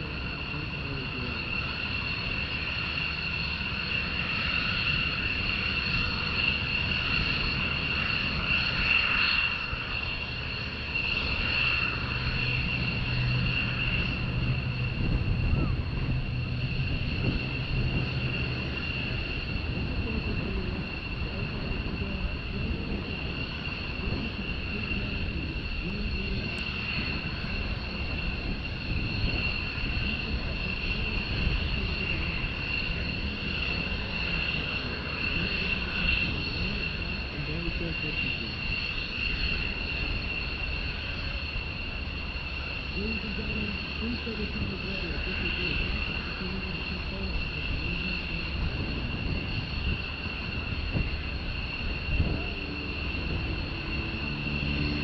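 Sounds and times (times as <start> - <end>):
jet aircraft flying overhead: 0.0 - 55.0.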